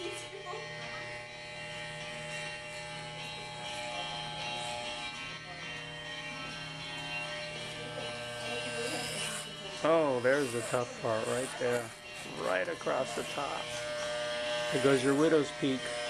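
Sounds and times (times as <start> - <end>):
electric hair clippers buzzing: 0.0 - 16.0.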